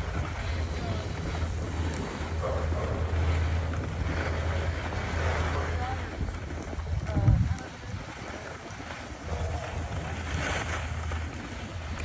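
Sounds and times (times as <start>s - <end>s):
sliding over packed snow: 0.0s - 12.0s
wind on microphone: 0.0s - 12.0s.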